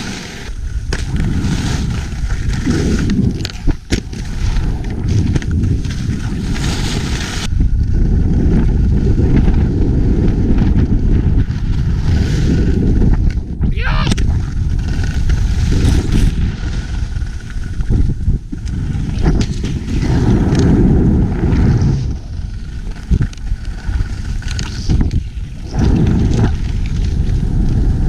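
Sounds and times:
skis scraping on snow: 0.0s - 13.3s, 14.3s - 28.0s
wind buffeting microphone: 0.5s - 28.0s.

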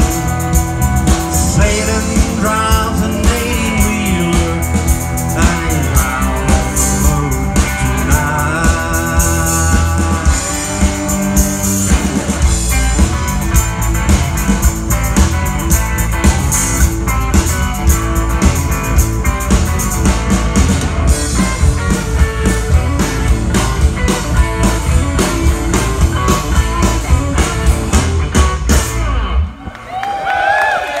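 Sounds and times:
drum kit and bass beat: 0.0s - 29.5s
electric guitar lead: 0.0s - 29.9s
audience cheering and clapping: 29.4s - 31.0s.

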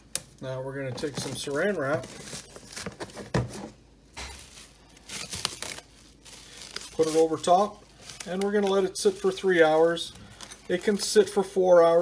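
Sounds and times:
cling film pulled and torn: 4.3s - 8.9s.

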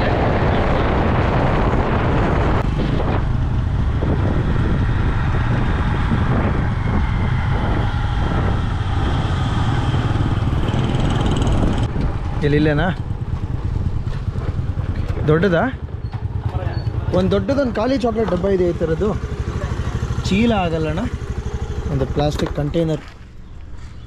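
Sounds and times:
wind rumble on microphone: 0.0s - 17.8s
motorcycle engines running: 0.0s - 24.0s.

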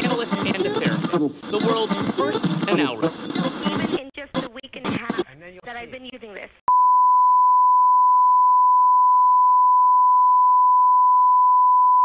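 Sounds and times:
sine test tone: 6.7s - 12.0s.

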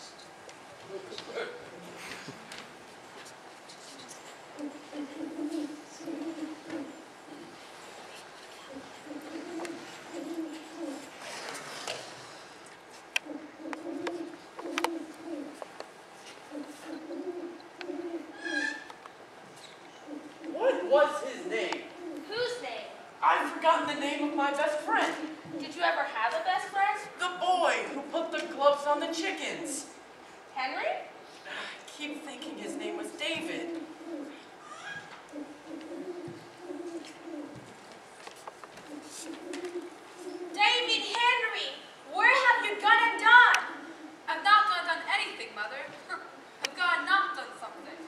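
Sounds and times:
dove cooing: 4.5s - 7.9s, 8.5s - 11.2s, 13.2s - 15.6s, 16.4s - 19.0s, 19.7s - 22.6s, 25.0s - 25.9s, 32.4s - 37.8s, 38.8s - 41.4s, 42.2s - 44.3s, 47.2s - 48.0s.

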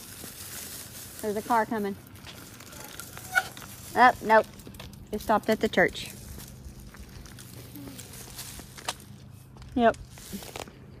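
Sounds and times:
footsteps on road: 0.0s - 11.0s.

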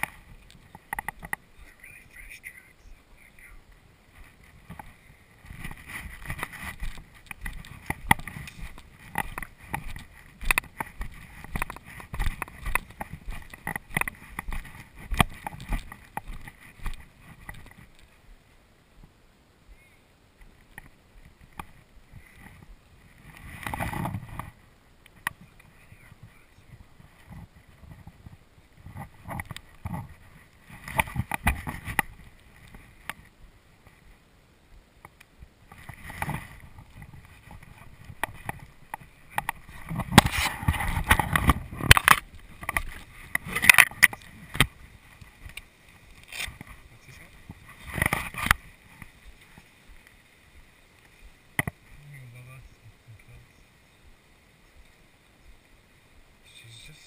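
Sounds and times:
walking through rustling grass: 0.0s - 18.4s, 35.4s - 52.8s.

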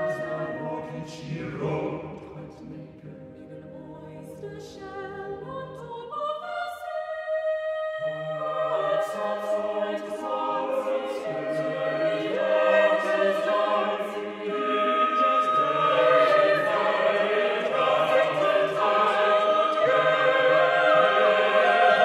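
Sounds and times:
choir singing a hymn: 0.0s - 22.0s.

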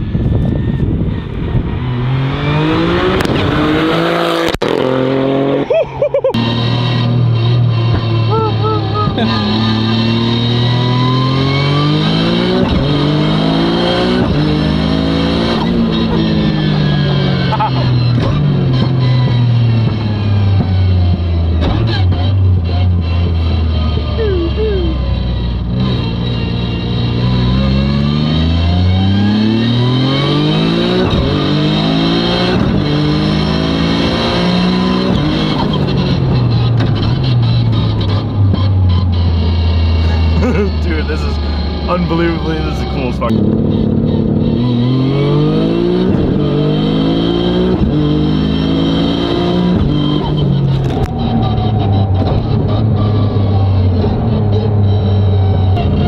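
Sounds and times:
car engine accelerating hard: 0.0s - 56.0s.

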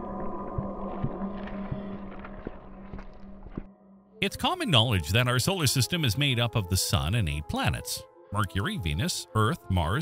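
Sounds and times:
rock cracking and crumbling: 0.9s - 3.7s.

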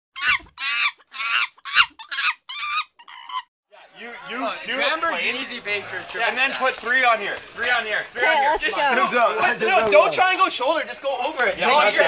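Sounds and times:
high-pitched squawking calls: 0.2s - 3.5s.

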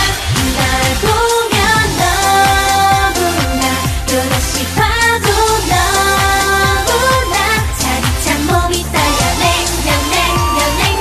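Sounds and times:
female vocal group singing: 0.0s - 11.0s
kick-drum beat: 0.0s - 11.0s
pop backing track: 0.0s - 11.0s.

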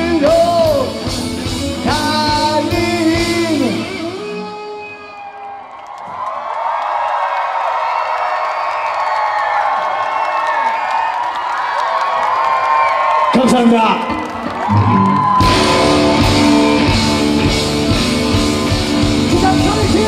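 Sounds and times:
punk rock band playing: 0.0s - 5.0s, 14.8s - 20.0s
concert crowd cheering: 0.0s - 20.0s.

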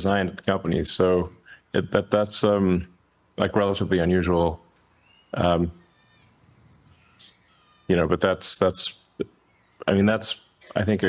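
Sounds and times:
man speaking: 0.0s - 4.6s, 5.4s - 5.8s, 7.9s - 11.0s.

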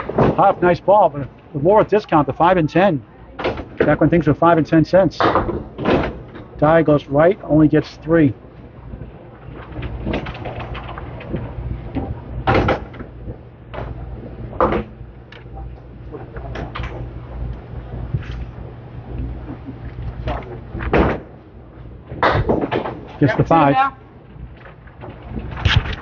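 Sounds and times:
alley rumble and hum: 0.0s - 26.0s
murmur of voices: 0.4s - 5.2s.

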